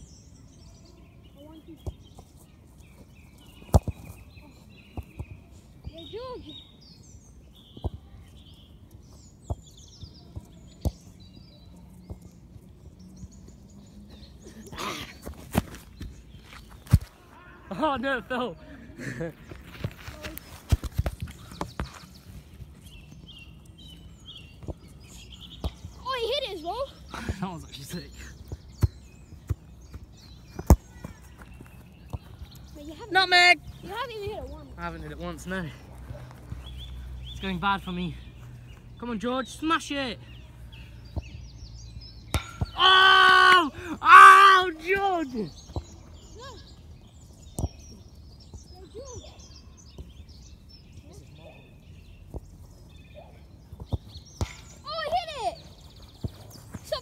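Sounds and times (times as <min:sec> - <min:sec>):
birds chirping: 0:00.0 - 0:57.0
distant shouting voices: 0:42.4 - 0:45.6.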